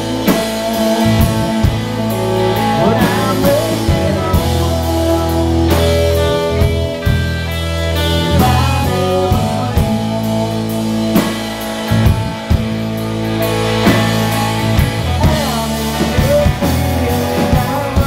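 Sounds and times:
rock band playing live: 0.0s - 18.0s.

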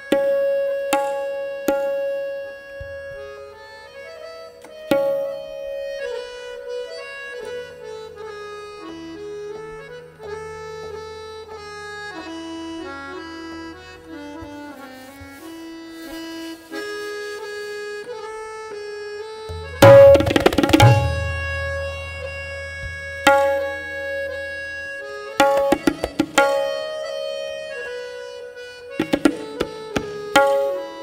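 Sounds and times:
tabla strokes: 0.0s - 3.5s, 4.6s - 8.3s, 19.4s - 28.0s, 28.6s - 31.0s
harmonium melody: 0.0s - 31.0s.

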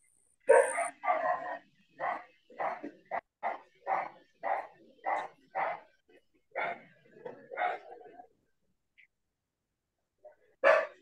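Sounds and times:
dog barking: 0.5s - 5.9s, 6.5s - 6.9s, 7.5s - 8.1s, 10.6s - 11.0s.

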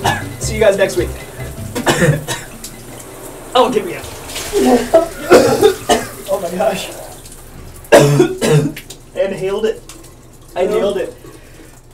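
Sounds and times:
person coughing and spluttering: 0.0s - 0.4s, 1.7s - 2.7s, 4.4s - 6.7s, 7.8s - 8.9s
shower spraying: 0.0s - 11.9s.

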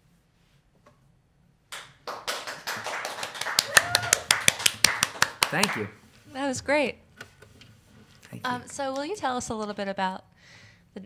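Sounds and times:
small audience clapping: 1.7s - 6.0s.

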